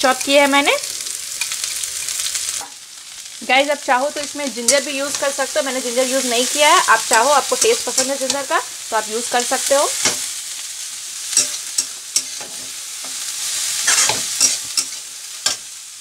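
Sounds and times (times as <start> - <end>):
cabbage sizzling in hot oil: 0.0 - 16.0
spatula scraping and knocking pan: 11.3 - 13.2, 13.8 - 15.6.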